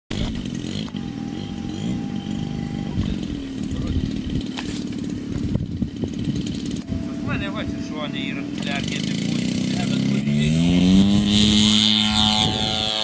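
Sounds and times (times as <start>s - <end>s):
model plane engine running: 0.1s - 13.0s.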